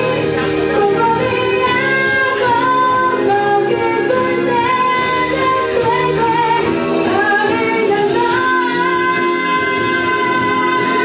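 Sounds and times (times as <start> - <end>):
electric guitar: 0.0 - 11.0
woman singing: 0.0 - 11.0.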